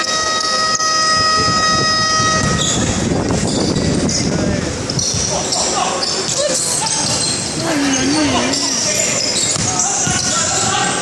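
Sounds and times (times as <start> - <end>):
scoreboard horn long tone: 0.0 - 3.2.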